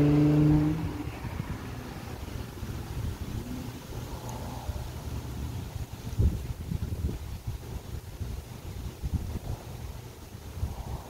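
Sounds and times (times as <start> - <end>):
car engine passing: 0.0 - 5.0.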